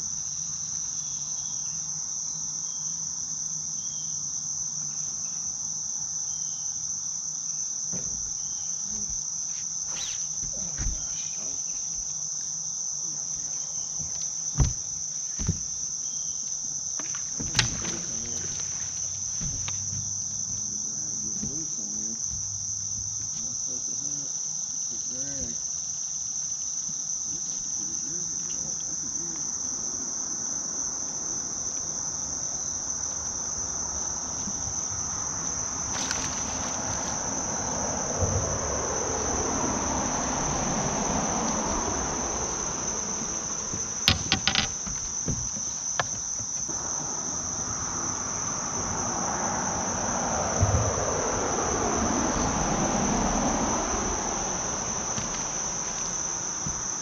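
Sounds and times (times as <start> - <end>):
insect chorus: 0.0 - 57.0
sharp knocks: 14.0 - 15.8, 19.3 - 20.6, 43.1 - 46.8.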